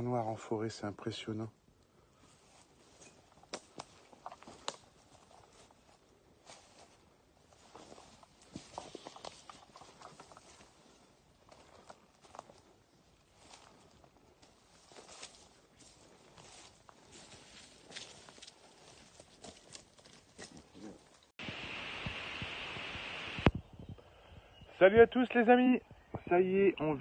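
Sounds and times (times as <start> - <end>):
footsteps on leaves and twigs: 2.2 - 21.3.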